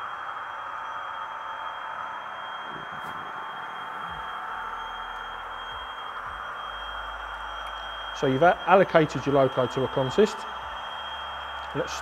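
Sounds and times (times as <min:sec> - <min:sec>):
thin steady high tone: 0:00.0 - 0:12.0
diesel engine sound from speaker: 0:06.6 - 0:12.0.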